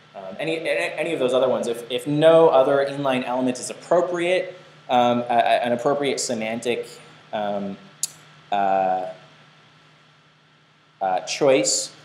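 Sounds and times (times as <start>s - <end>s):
faint hiss and low hum: 0.0s - 12.0s
man saying uh: 0.2s - 7.8s, 8.6s - 9.2s, 11.0s - 11.9s.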